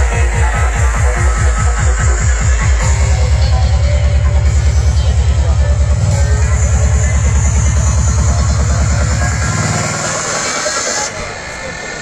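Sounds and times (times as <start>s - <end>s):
fast kick drum and bass: 0.0s - 11.1s
psytrance music: 0.0s - 12.0s.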